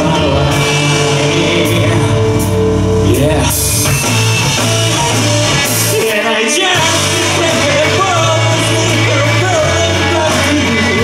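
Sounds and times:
bass guitar: 0.0s - 11.0s
drum kit with cymbals: 0.0s - 11.0s
electric guitars: 0.0s - 11.0s.

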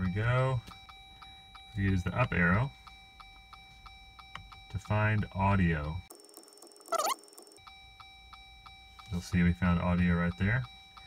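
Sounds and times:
rising electronic chirp: 6.1s - 7.6s
steady electronic tones: 6.1s - 7.6s
fast electronic ticking: 6.1s - 7.8s.

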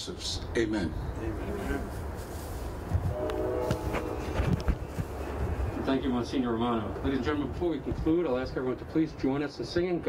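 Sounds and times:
horn sounding a chord: 3.1s - 4.7s.

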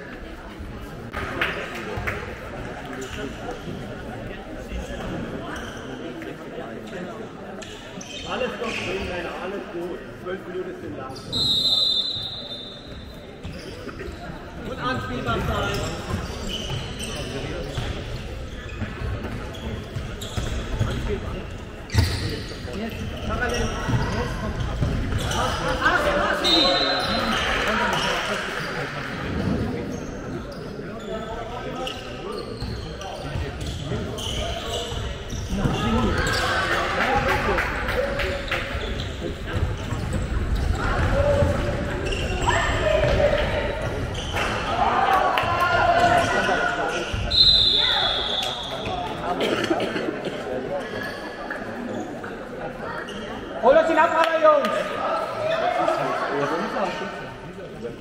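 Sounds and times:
voices echoing in a hall: 0.0s - 58.0s.

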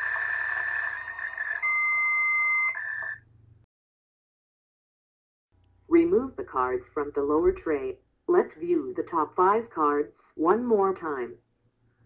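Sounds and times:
electronic machine buzzing tone: 0.0s - 3.2s.

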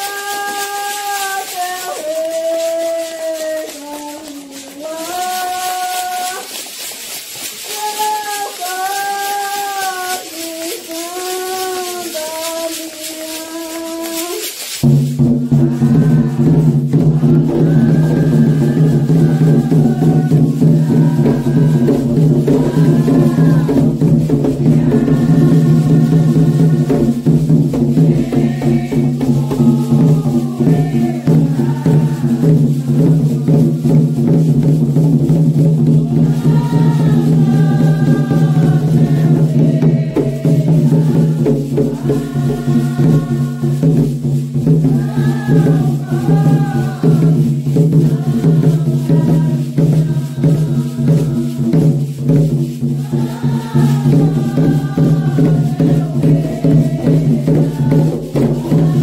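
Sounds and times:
hand drums and percussion: 0.0s - 59.0s
people singing: 0.0s - 59.0s.

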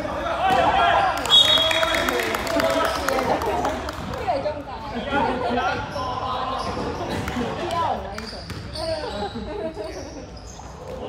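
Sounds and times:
basketball bouncing on court: 8.4s - 8.9s.

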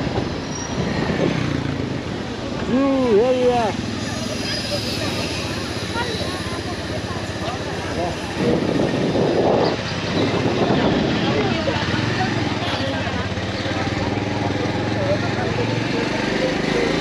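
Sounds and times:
motorcycle engine running: 0.0s - 17.0s
road and wind noise: 0.0s - 17.0s.

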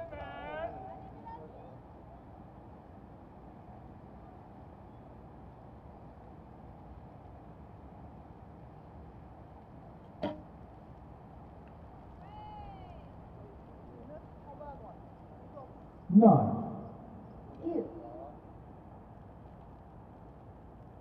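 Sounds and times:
steady background hum: 0.0s - 21.0s.

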